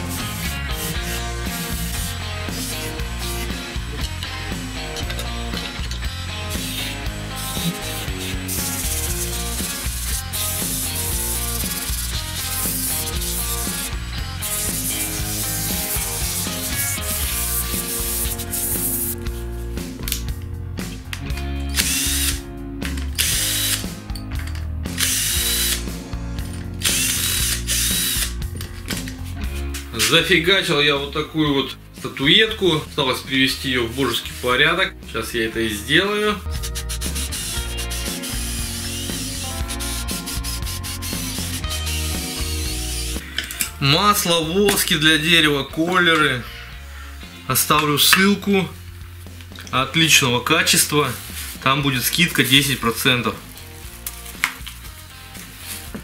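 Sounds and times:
sandpaper on spinning wood: 0:00.0 - 0:03.7, 0:07.6 - 0:19.2, 0:36.5 - 0:43.2
rock music: 0:00.0 - 0:56.0.

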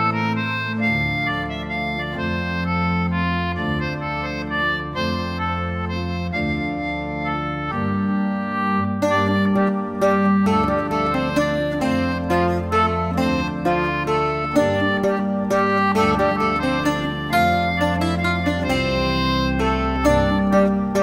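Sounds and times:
held organ bass notes: 0:00.0 - 0:21.0
plucked octave mandolin: 0:00.0 - 0:21.0
reedy concertina melody: 0:00.0 - 0:21.0.

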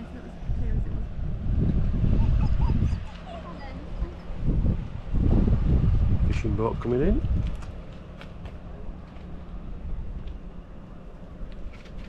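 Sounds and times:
wind buffeting microphone: 0:00.0 - 0:10.7.

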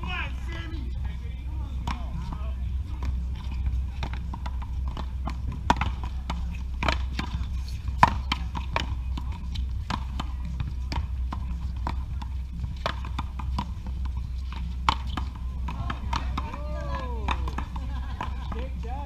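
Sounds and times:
paddles striking rubber ball: 0:04.0 - 0:19.0
ball hitting concrete wall: 0:14.5 - 0:18.6.

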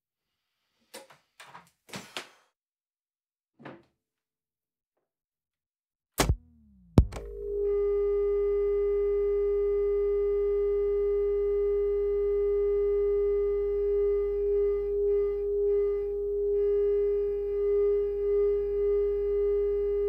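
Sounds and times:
feedback tone: 0:06.2 - 0:20.0.

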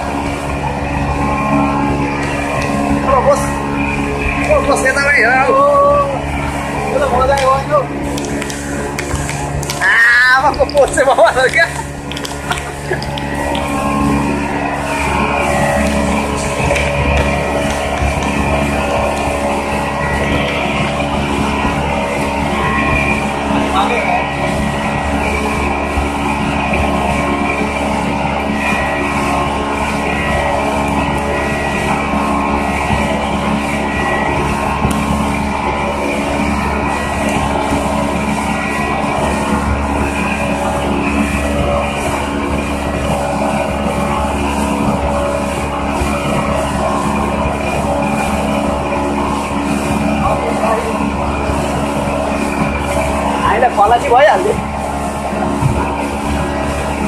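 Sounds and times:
rushing water and spray: 0:00.0 - 0:57.0
watercraft engine running: 0:00.0 - 0:57.0.

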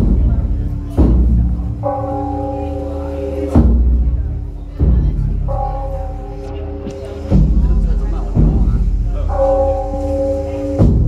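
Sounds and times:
large drum struck: 0:00.0 - 0:11.0.

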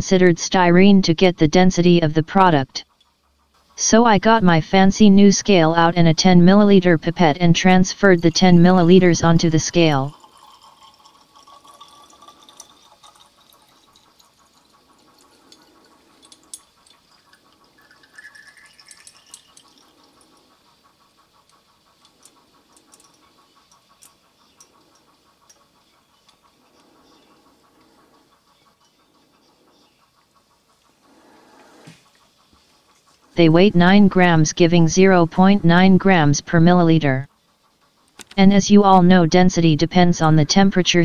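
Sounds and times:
liquid trickling into glass: 0:10.1 - 0:14.0, 0:17.8 - 0:19.5.

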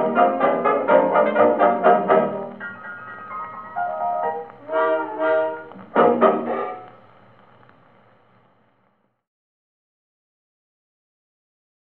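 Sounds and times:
jazz dance band on gramophone: 0:00.0 - 0:08.5
record surface hiss: 0:00.0 - 0:09.3.

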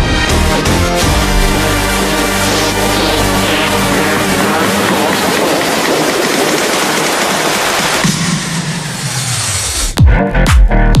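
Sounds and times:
rushing transition sound effect: 0:00.0 - 0:09.9
electronic music: 0:00.0 - 0:11.0.

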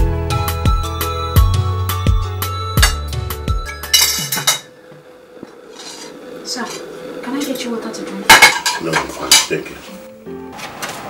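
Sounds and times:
china and cutlery clinking: 0:02.8 - 0:04.7, 0:08.3 - 0:09.8.

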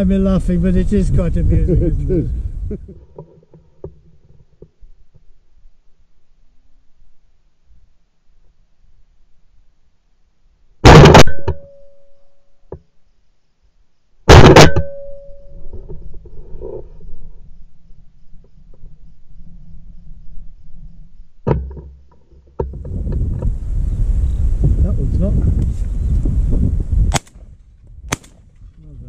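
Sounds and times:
loud shotgun shots: 0:10.8 - 0:11.6, 0:14.3 - 0:15.1, 0:27.1 - 0:27.4, 0:28.1 - 0:28.4.

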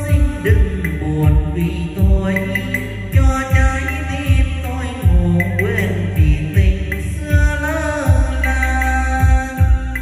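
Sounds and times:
heavy bass thumps: 0:00.0 - 0:10.0.

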